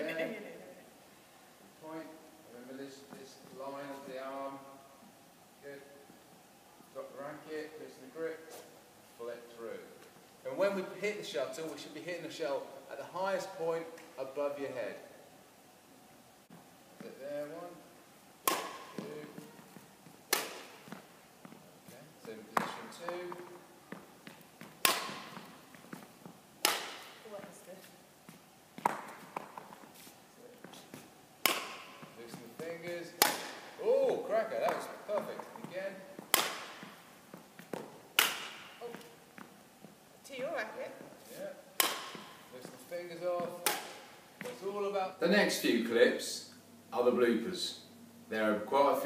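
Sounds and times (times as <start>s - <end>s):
badminton racket striking shuttlecock: 18.4s - 21.0s, 24.6s - 25.7s, 26.6s - 27.3s, 30.9s - 32.1s, 33.1s - 33.7s, 36.2s - 37.1s, 37.7s - 39.1s, 41.8s - 42.5s, 43.5s - 44.6s.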